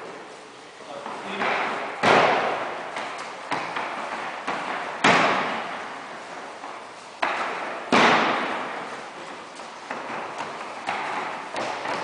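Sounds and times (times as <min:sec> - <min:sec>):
bodies slapping foam mats: 0:01.1 - 0:12.0.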